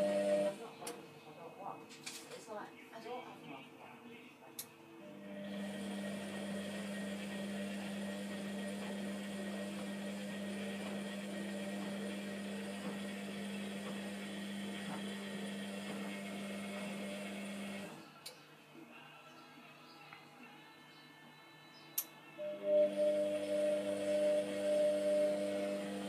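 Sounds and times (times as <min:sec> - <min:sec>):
washing machine drum humming: 0:00.0 - 0:00.6, 0:05.5 - 0:18.0, 0:22.8 - 0:26.0.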